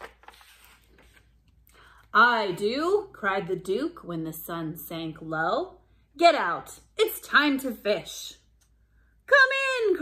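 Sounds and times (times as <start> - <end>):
book pages turning: 0.0 - 1.6.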